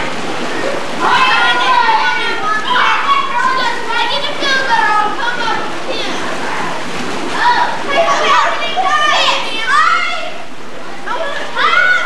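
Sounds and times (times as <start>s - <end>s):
children shouting and chattering: 0.0s - 12.0s
moving water: 0.0s - 12.0s.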